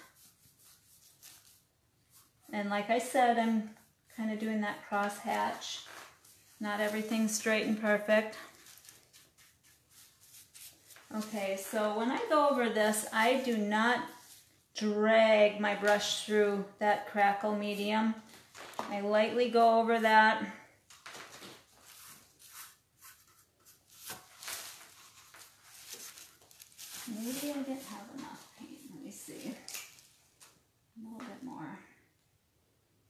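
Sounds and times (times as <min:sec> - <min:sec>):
paintbrush strokes: 0:00.0 - 0:03.1, 0:03.7 - 0:14.7, 0:21.8 - 0:29.7.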